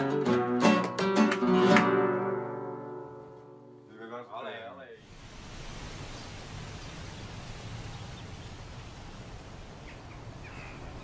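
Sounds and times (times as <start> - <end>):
wind rustling grass: 5.0 - 11.0.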